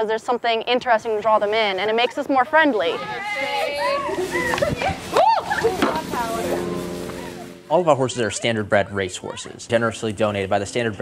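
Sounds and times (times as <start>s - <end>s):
garden hose spraying water: 1.5s - 7.5s
children chattering: 1.8s - 9.6s.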